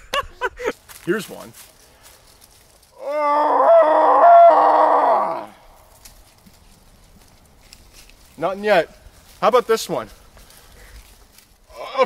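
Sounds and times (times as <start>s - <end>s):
man imitating animal call: 3.0s - 5.6s, 11.7s - 12.0s.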